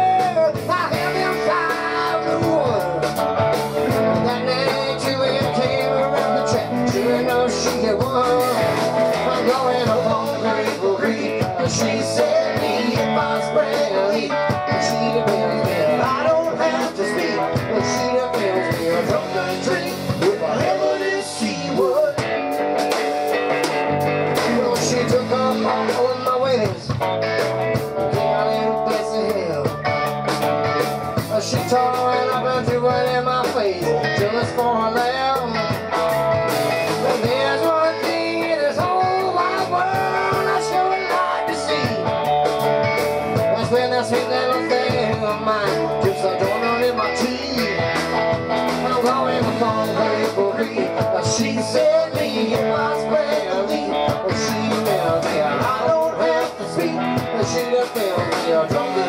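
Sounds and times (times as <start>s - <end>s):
rock band playing: 0.0s - 59.0s.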